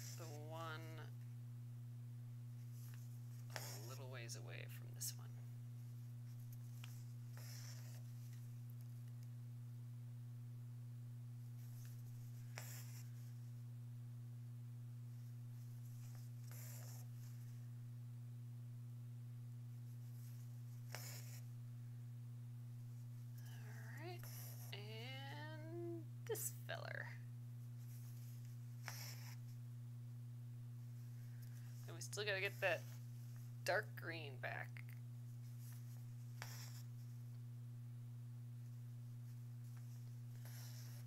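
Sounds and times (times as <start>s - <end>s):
woman humming quietly: 0.0s - 1.1s, 23.3s - 27.1s
steady low hum: 0.0s - 41.0s.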